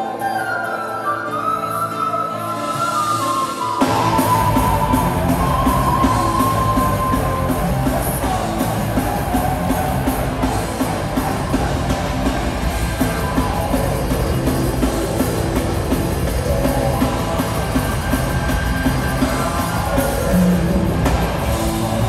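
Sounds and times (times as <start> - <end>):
electric guitars: 0.0 - 22.0
drum kit: 2.7 - 22.0.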